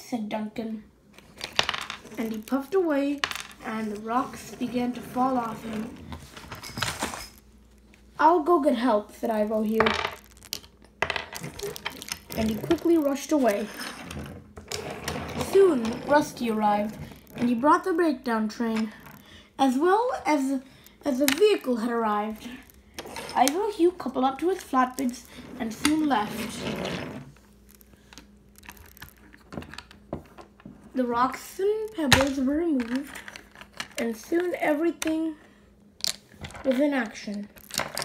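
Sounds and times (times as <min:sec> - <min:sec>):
stones clicking on wooden table: 0:01.2 - 0:02.4, 0:03.2 - 0:03.6, 0:09.8 - 0:13.0, 0:37.6 - 0:38.0.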